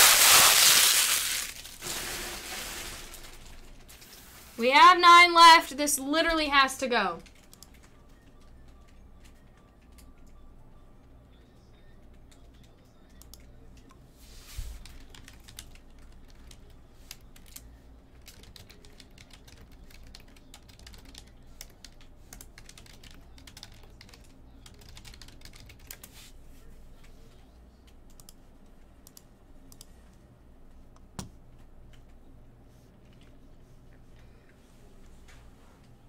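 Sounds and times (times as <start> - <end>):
typing on computer keyboard: 7.2 - 10.4, 14.8 - 26.1.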